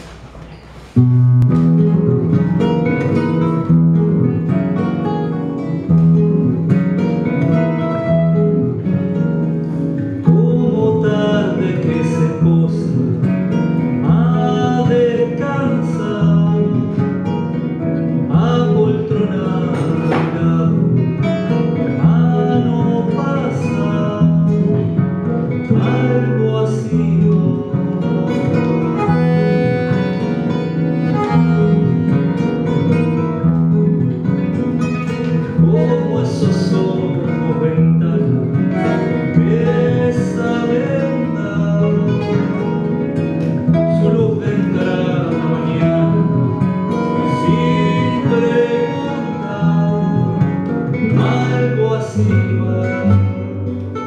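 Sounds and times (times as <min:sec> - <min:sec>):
plucked guitar notes: 0:00.0 - 0:54.0
man singing: 0:10.0 - 0:31.7, 0:35.0 - 0:54.0
bandoneon held tones: 0:28.4 - 0:33.3, 0:44.9 - 0:51.4.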